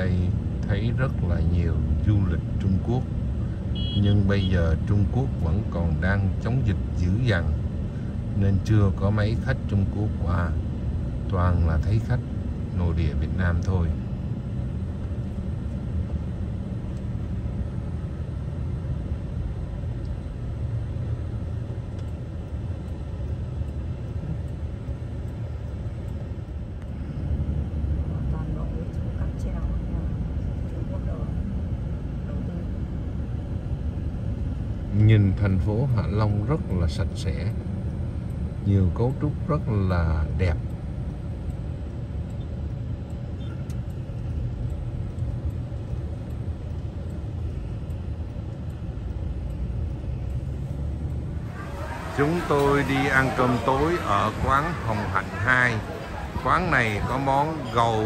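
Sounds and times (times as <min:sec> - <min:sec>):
car road and engine rumble: 0:00.0 - 0:58.0.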